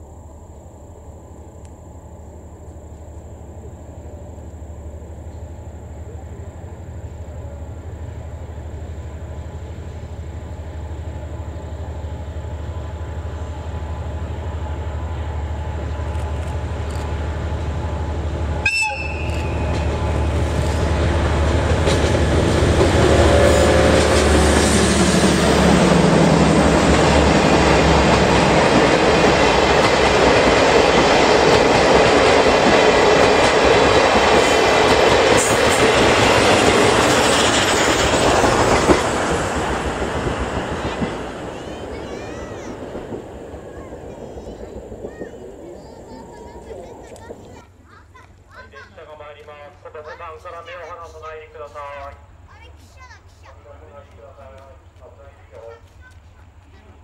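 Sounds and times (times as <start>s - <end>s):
diesel locomotive engine running: 0.0s - 57.0s
train wheels clicking over rail joints: 15.6s - 47.6s
high horn toot: 18.6s - 19.9s.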